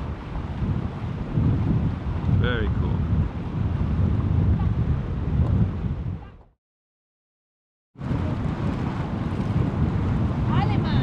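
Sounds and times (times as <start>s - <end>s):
wind buffeting microphone: 0.0s - 6.6s, 8.0s - 11.0s.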